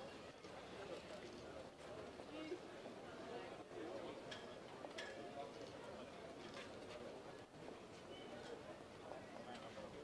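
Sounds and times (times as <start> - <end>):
faint crowd chatter: 0.0 - 10.0.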